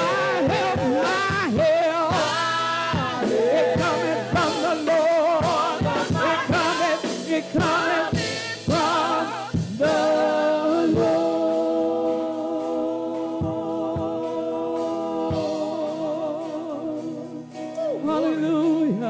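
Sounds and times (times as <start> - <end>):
women singing in harmony: 0.0 - 16.4
drum kit: 0.0 - 19.0.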